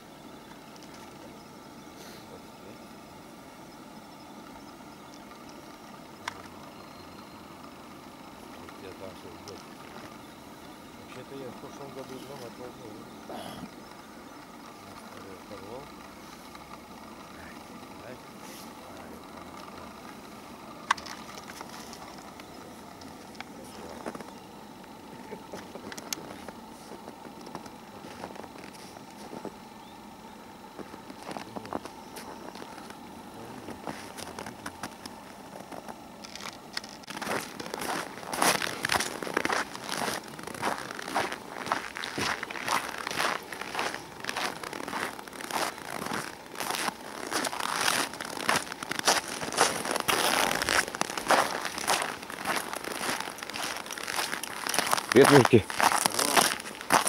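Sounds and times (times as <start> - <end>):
footsteps crunching in snow: 20.7 - 24.4, 25.2 - 29.6, 30.7 - 57.0.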